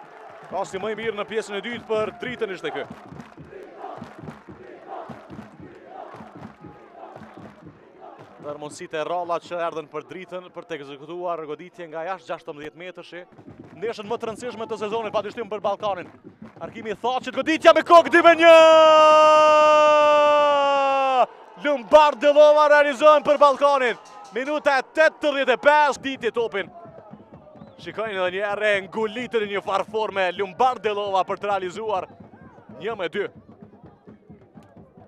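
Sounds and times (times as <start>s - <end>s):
stadium crowd voices: 0.0s - 35.0s
crowd chanting: 2.5s - 8.5s
man shouting goal: 17.4s - 26.8s.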